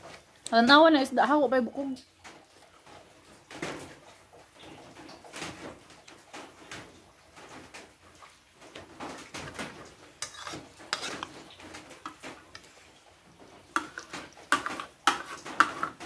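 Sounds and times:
spoon scraping ceramic plate: 10.2 - 11.4, 13.8 - 16.0.

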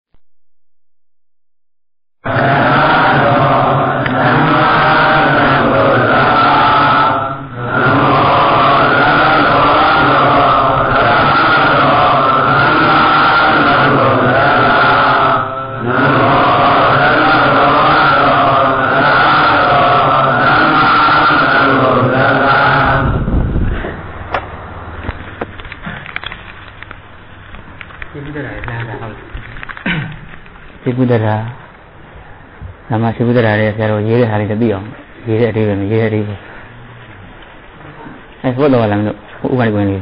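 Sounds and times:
chanting: 2.2 - 24.0.

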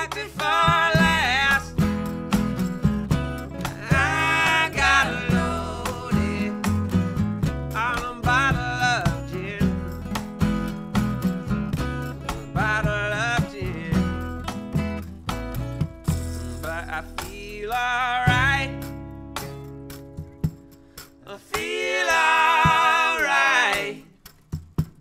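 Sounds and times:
voices singing in harmony: 0.0 - 1.7, 3.7 - 6.8, 21.3 - 24.1
upright bass: 0.0 - 24.2
strummed acoustic guitar: 0.0 - 25.0.

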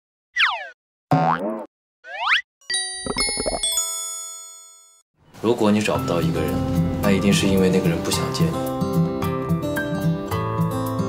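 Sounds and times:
springy boing: 1.1 - 2.4.

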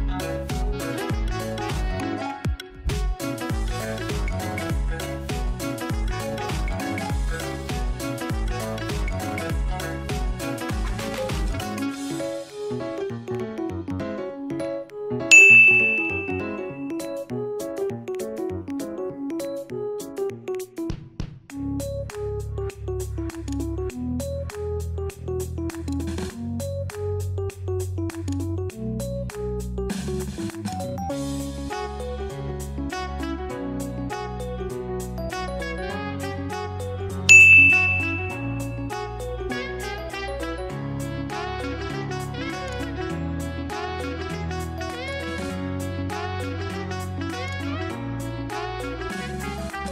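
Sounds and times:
bouncy keyboard music: 0.0 - 49.9
bright ding: 15.3 - 17.0, 37.3 - 38.8.

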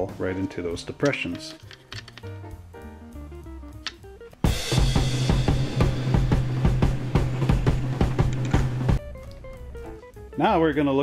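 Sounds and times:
drum kit beat: 3.2 - 10.4.

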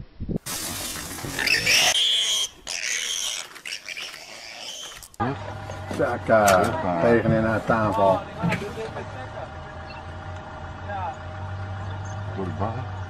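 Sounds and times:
harsh wild animal calls: 1.2 - 5.2.

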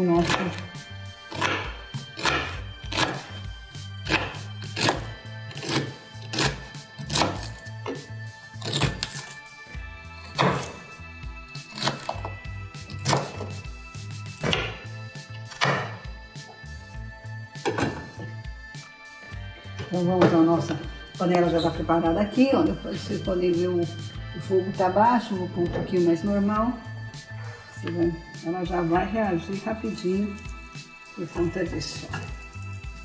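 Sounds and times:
background music: 0.0 - 33.0
knife chopping on wooden board: 0.2 - 0.7, 1.3 - 3.4, 4.0 - 8.0, 8.6 - 9.3, 10.2 - 10.8, 11.7 - 12.3, 12.9 - 13.6, 14.4 - 16.0, 17.6 - 18.3.

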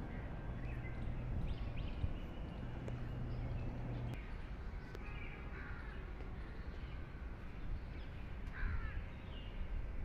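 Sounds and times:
low steady background rumble: 0.0 - 7.2
birds harsh calls: 8.0 - 9.6.

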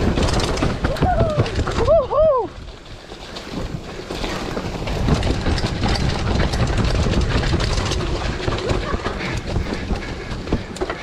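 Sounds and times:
bike rattling over bumps: 0.0 - 11.0
tyres rumbling on dirt: 0.0 - 11.0.

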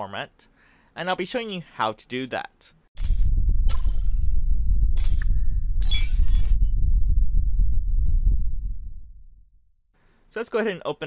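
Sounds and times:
deep bass rumble: 3.1 - 5.8, 6.4 - 9.7.

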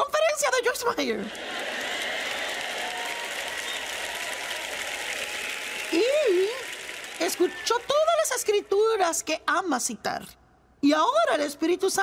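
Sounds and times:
audience applauding: 1.3 - 8.4.

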